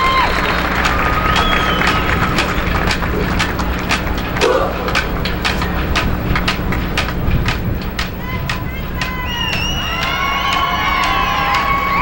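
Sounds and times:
steady background noise: 0.0s - 12.0s
marching band drum beat: 0.1s - 12.0s.

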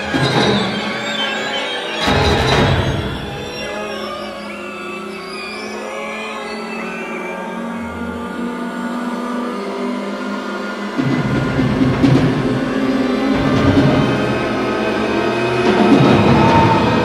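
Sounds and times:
synthesized wildlife calls: 0.0s - 9.7s
orchestral music with low tones: 10.6s - 17.0s.

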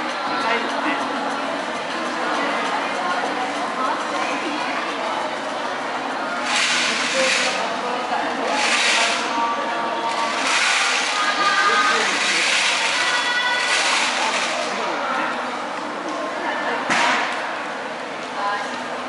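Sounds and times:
voices and chatter: 0.0s - 19.0s.

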